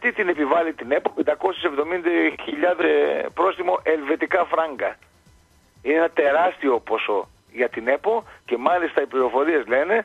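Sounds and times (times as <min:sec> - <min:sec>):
man talking: 0:00.0 - 0:05.0, 0:05.8 - 0:10.0.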